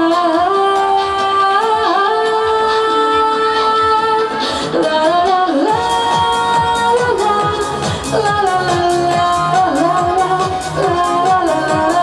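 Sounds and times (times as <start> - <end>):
backing track with steady beat: 0.0 - 12.0
woman singing into microphone: 0.0 - 12.0.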